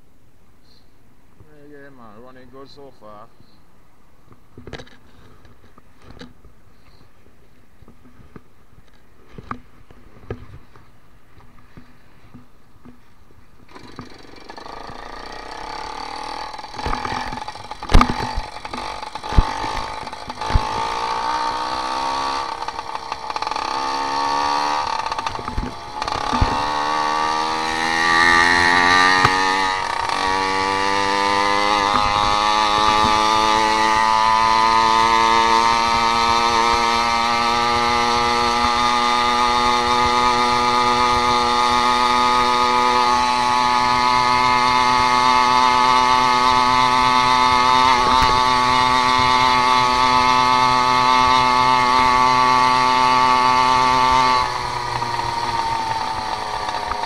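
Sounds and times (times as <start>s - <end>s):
small two-stroke engine revving: 13.7s - 57.0s.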